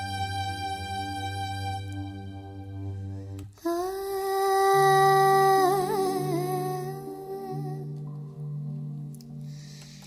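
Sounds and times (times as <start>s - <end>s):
electronic keyboard low notes: 0.0s - 10.0s.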